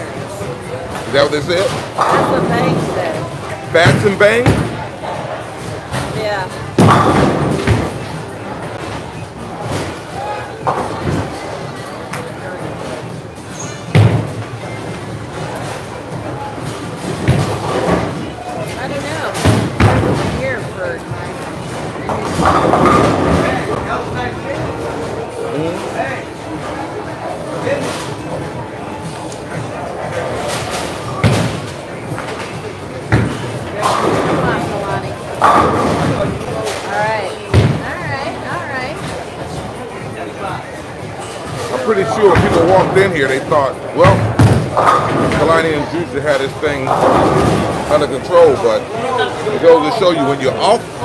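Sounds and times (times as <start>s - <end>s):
background chatter: 0.0s - 51.0s.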